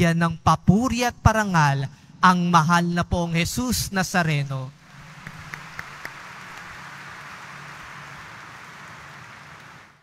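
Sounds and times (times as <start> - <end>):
congregation applauding: 4.8 - 10.0.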